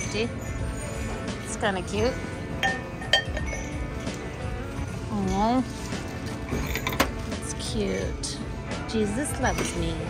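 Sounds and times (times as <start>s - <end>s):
background music: 0.0s - 10.0s
sharp clink of hard object: 2.6s - 3.8s.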